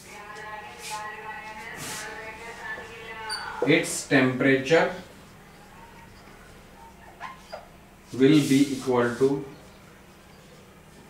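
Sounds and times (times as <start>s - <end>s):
faint room hum: 0.0s - 11.0s
marker squeaking on whiteboard: 3.2s - 3.7s, 5.7s - 7.8s.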